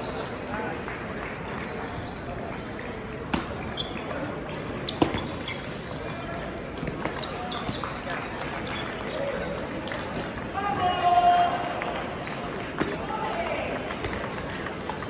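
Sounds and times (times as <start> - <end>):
crowd chatter in a hall: 0.0 - 15.0
table tennis ball bouncing: 6.7 - 7.8, 13.7 - 15.0.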